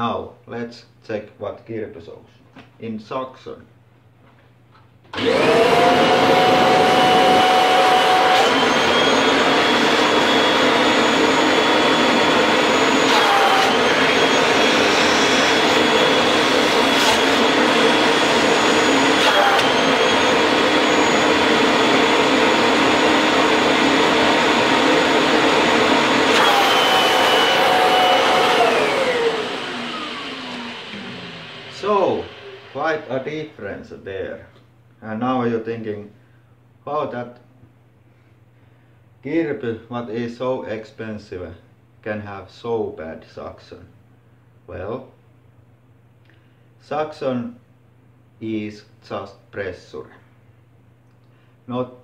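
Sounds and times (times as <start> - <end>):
vacuum cleaner motor whining: 5.1 - 33.5
vacuum cleaner winding down: 5.1 - 33.6.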